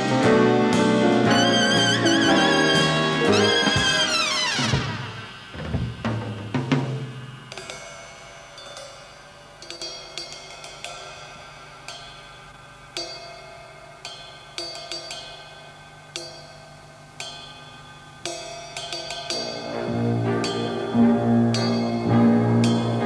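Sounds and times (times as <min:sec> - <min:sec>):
big band sustained chord: 0:00.0 - 0:07.4, 0:19.3 - 0:23.0
ringing cymbal strokes: 0:00.0 - 0:23.0.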